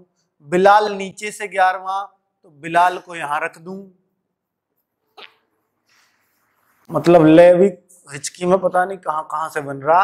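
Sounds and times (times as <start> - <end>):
man speaking: 0.0 - 4.1, 6.9 - 10.0.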